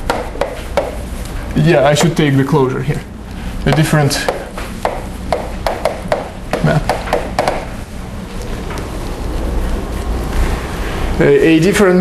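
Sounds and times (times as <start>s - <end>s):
chalk tapping on blackboard: 0.0s - 1.1s, 3.6s - 7.7s.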